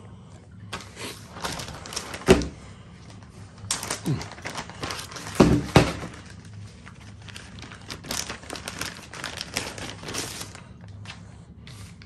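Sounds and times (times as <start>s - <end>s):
plastic bag rustling: 0.7s - 12.0s.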